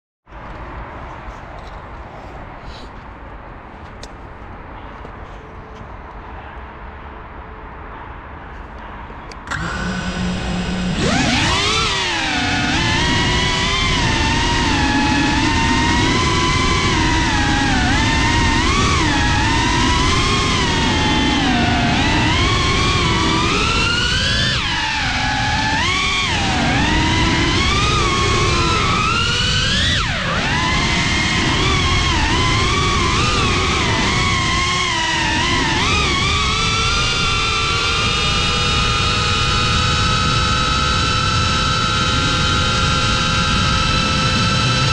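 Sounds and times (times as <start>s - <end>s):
drone motors whining: 9.3s - 44.9s.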